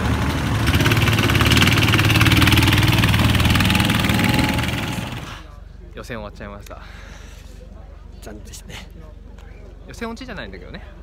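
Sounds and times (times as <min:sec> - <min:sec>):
go-kart engine running hard: 0:00.0 - 0:05.4.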